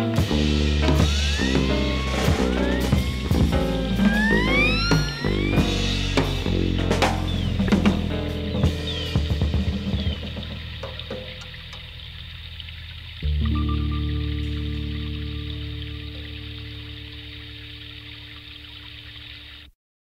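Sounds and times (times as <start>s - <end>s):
folk-rock band with drums: 0.0s - 11.4s.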